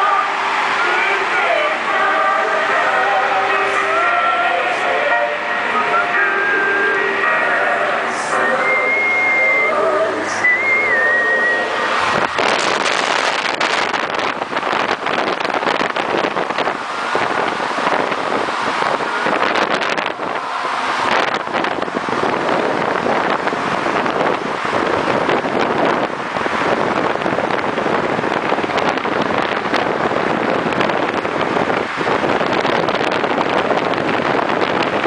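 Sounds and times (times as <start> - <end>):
passing road traffic: 0.0 - 35.0
wind on microphone: 8.0 - 35.0
whistle-like tune: 8.3 - 11.8.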